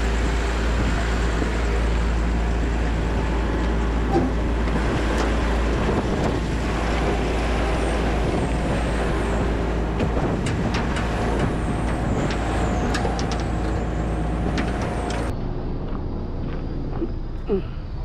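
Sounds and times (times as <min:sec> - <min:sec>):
heavy truck engine running: 0:00.0 - 0:18.0
metallic clicks and clanks: 0:10.0 - 0:15.3.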